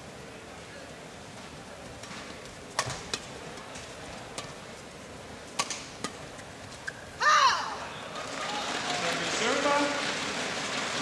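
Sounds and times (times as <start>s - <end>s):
indoor crowd hum: 0.0s - 11.0s
rackets hitting shuttlecock: 2.0s - 4.6s, 5.5s - 7.0s.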